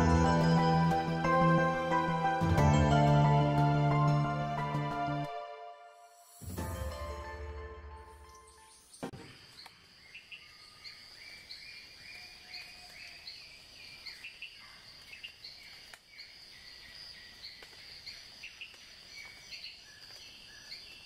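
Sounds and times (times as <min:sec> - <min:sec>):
birds and insects chirping: 0:06.2 - 0:21.0.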